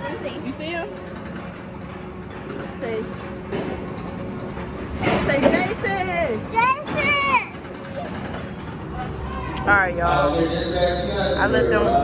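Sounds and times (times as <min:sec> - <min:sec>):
amusement park hum: 0:00.0 - 0:12.0.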